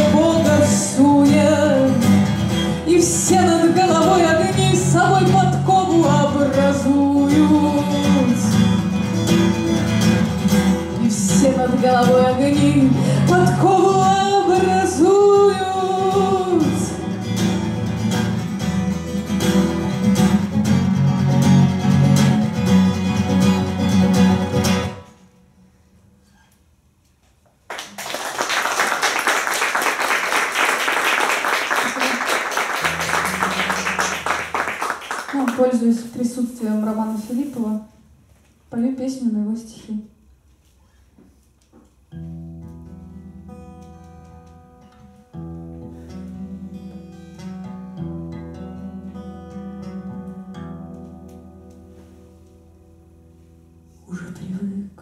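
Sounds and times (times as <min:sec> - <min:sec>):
acoustic guitar fingerpicking: 0:00.0 - 0:25.4, 0:32.8 - 0:34.8, 0:41.8 - 0:54.5
acoustic guitar strumming: 0:00.0 - 0:26.5, 0:32.4 - 0:35.6, 0:42.1 - 0:54.0
applause: 0:27.6 - 0:35.8.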